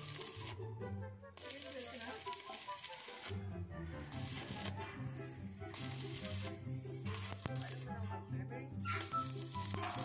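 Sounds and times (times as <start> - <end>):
welder arc crackling: 0.0 - 0.6, 1.4 - 8.1, 9.0 - 10.0.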